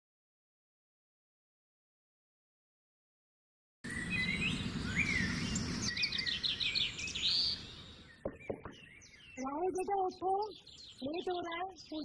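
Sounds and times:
birds chirping and trilling: 3.8s - 12.0s.

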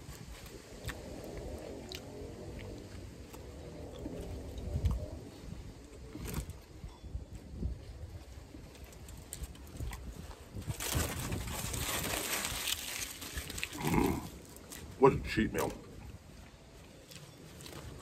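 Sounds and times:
man chewing food: 0.0s - 5.1s
wind rumble on microphone: 0.0s - 18.0s.

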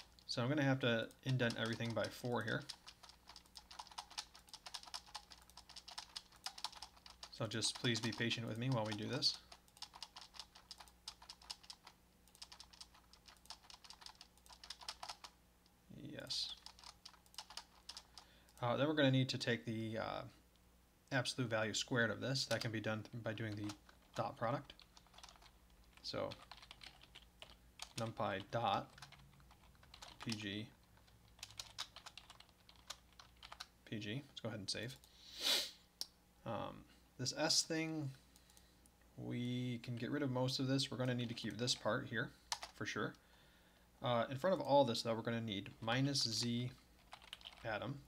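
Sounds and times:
typing on computer keyboard: 0.0s - 0.2s, 1.3s - 15.3s, 16.5s - 18.6s, 22.5s - 22.7s, 24.8s - 28.2s, 28.8s - 33.7s, 42.5s - 42.8s, 46.4s - 47.7s.

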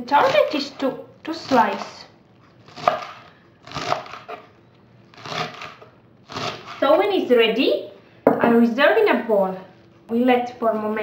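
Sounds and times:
knife slicing crunchy stems: 0.1s - 4.4s, 5.1s - 6.8s.

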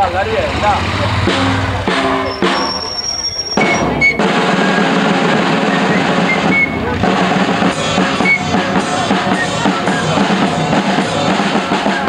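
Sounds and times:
marching drums beating: 0.8s - 12.0s
fife playing high notes: 1.3s - 11.0s.

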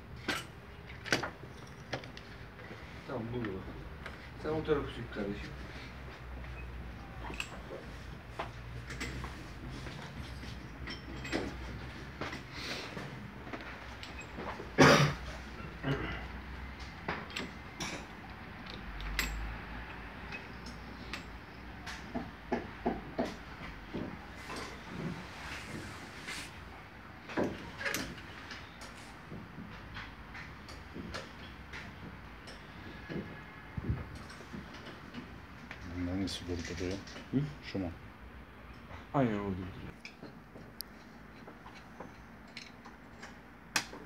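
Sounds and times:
metallic clicks of hand tools: 18.6s - 22.0s.

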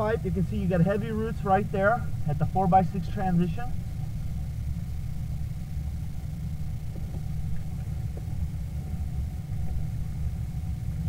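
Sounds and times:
faint steady whine: 0.0s - 11.0s
low background rumble: 0.0s - 11.0s.

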